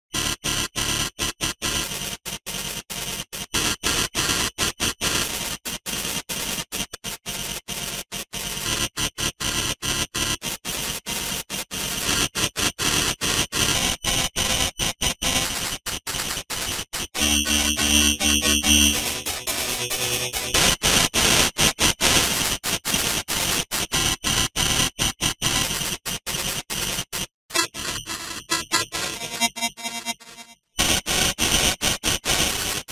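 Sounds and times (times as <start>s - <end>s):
stuttering buzzing chord: 17.1s - 20.7s
heavily distorted logo music: 17.2s - 20.5s.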